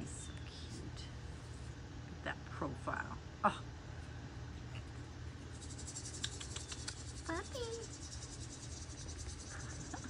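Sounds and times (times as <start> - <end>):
low steady hum: 0.0 - 10.0
insects chirping: 5.5 - 10.0.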